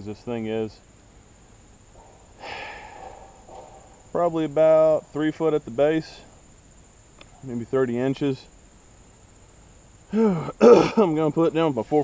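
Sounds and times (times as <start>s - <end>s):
high-pitched insect drone: 0.5s - 11.9s
person exhaling: 2.4s - 3.4s, 10.1s - 10.8s.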